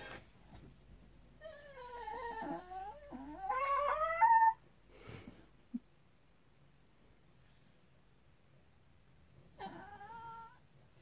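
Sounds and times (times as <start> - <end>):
dog whining and yowling: 1.4 - 4.6, 9.6 - 10.7.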